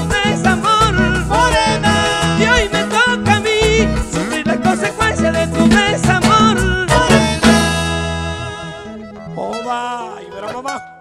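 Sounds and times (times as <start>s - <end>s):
person singing: 0.0s - 10.9s
band playing final chord: 0.1s - 9.4s.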